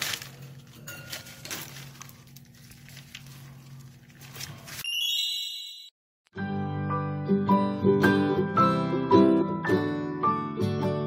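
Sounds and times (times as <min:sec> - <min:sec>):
faint clicks and rustles: 0:00.0 - 0:04.8
bright chime sound effect: 0:04.8 - 0:06.0.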